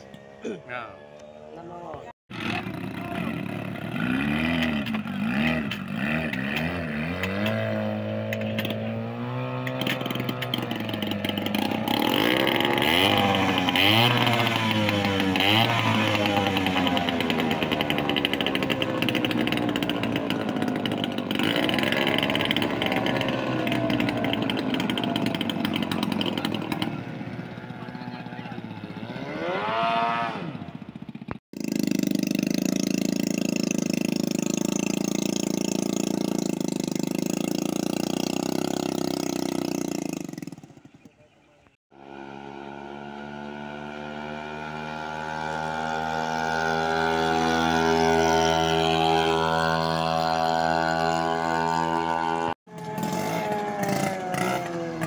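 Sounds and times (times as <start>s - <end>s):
outboard motors running hard: 0.0s - 41.3s, 41.9s - 55.0s
outboard running at steady pitch: 10.1s - 28.3s, 31.5s - 41.1s, 41.9s - 54.3s.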